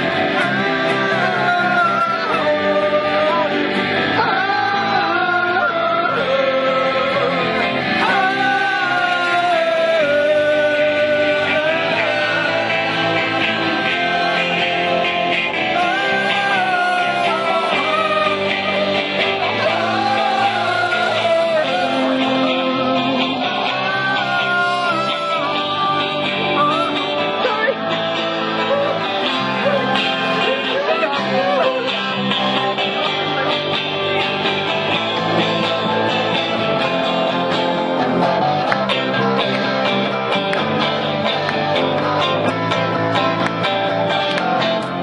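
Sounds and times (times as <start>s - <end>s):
person singing: 0.0s - 45.0s
strummed guitars: 0.0s - 45.0s.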